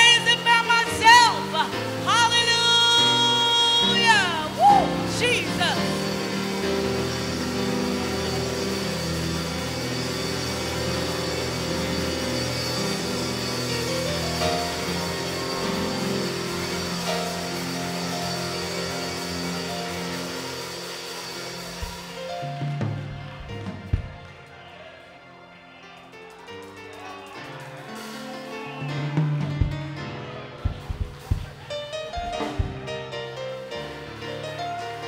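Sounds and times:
church keyboard held chords: 0.0s - 35.0s.

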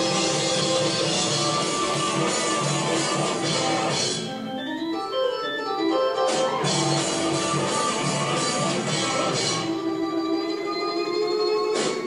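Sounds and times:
held keyboard chords: 0.0s - 12.0s
live rock band playing: 0.0s - 12.0s.

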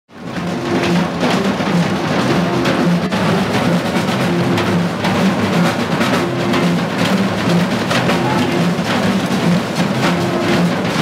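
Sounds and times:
drum kit solo: 0.4s - 11.0s.

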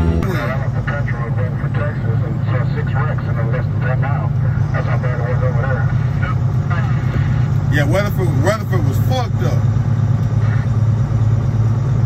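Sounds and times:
voices talking: 0.0s - 9.6s
truck engine and road drone: 0.0s - 12.0s.

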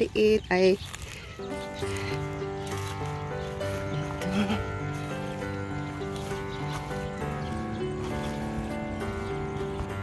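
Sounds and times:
background music with sustained notes: 0.0s - 10.0s.

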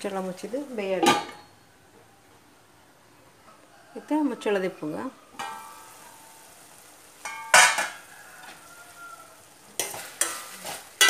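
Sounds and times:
vegetables sizzling in a pan: 0.0s - 1.8s, 4.0s - 11.0s
metal lid ringing: 1.0s - 1.5s
ladle scraping a pan: 9.8s - 11.0s.

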